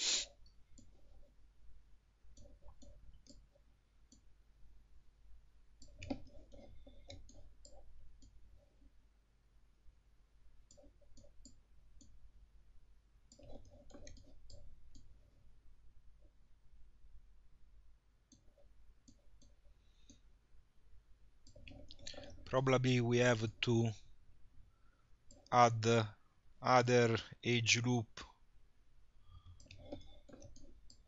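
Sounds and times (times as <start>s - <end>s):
computer mouse clicks: 0.4s - 1.2s, 2.3s - 3.5s, 4.1s - 4.3s, 5.8s - 8.4s, 10.6s - 12.2s, 13.3s - 15.1s, 18.2s - 20.3s, 21.4s - 22.5s, 29.4s - 31.0s.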